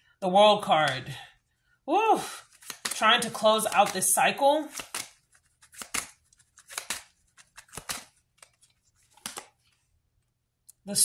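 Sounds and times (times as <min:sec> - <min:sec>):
cards being handled: 0:02.4 - 0:10.3.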